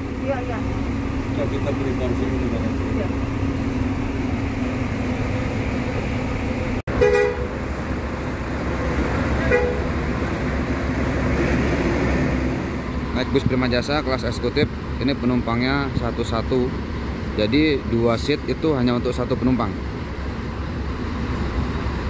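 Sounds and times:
bus diesel engine idling: 0:00.0 - 0:22.0
vehicle horn toots: 0:06.9 - 0:07.6, 0:09.4 - 0:10.0.

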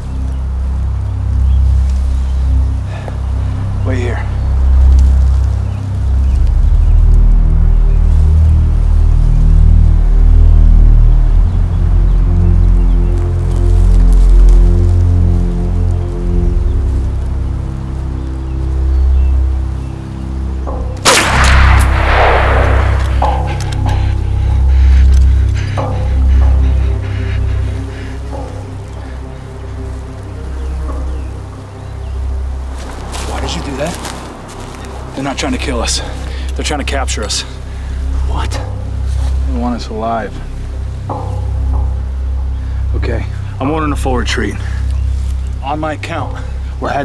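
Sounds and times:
low droning film score: 0:00.0 - 0:47.0
sharp hits: 0:20.7 - 0:28.9
loud bang: 0:21.0 - 0:24.6.

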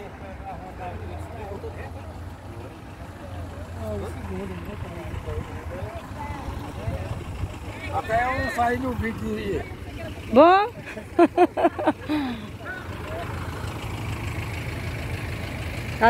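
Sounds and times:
distant people talking: 0:00.0 - 0:16.0
low steady rumble: 0:00.0 - 0:16.0.

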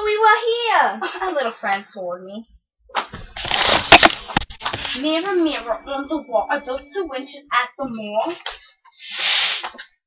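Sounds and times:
microphone handling scraping: 0:03.1 - 0:05.2.

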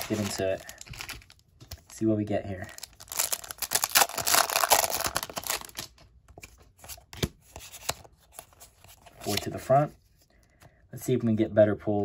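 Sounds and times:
foil wrapper tearing and crinkling: 0:00.0 - 0:01.4, 0:02.8 - 0:05.9.

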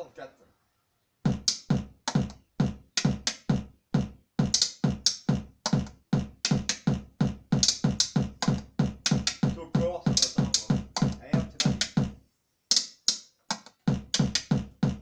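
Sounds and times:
fast electronic beat: 0:01.3 - 0:12.8, 0:13.5 - 0:15.0.

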